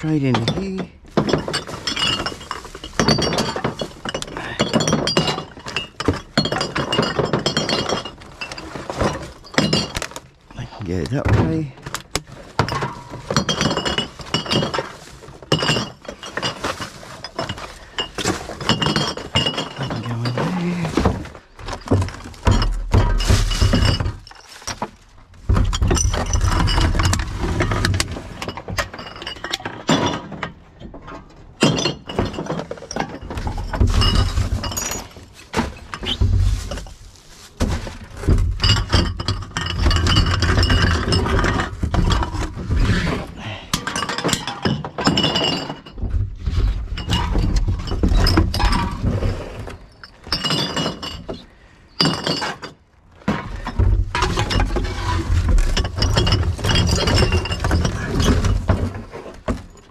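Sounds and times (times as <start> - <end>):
bottles and cans clinking: 0.0 - 59.9.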